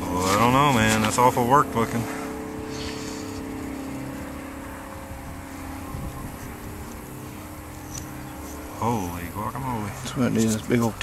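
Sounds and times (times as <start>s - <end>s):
distant machine engine hum: 0.0s - 11.0s
soil scraping by hand: 0.1s - 1.3s, 2.7s - 3.4s.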